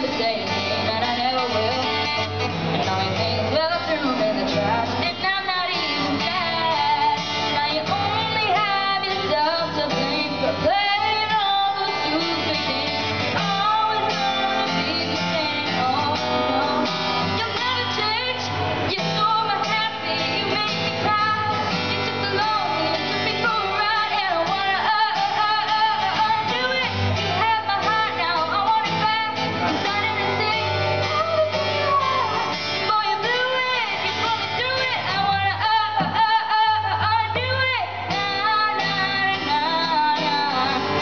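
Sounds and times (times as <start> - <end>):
acoustic guitar strumming: 0.0 - 41.0
girl singing: 0.0 - 41.0.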